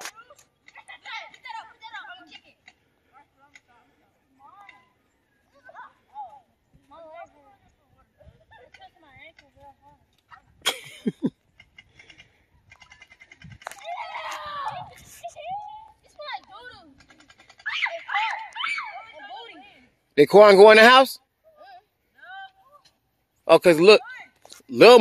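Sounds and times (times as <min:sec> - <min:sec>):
children calling and shouting: 0:00.0 - 0:23.0.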